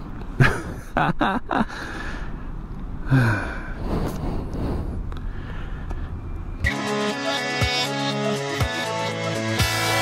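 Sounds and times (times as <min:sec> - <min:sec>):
music: 0:06.6 - 0:10.0.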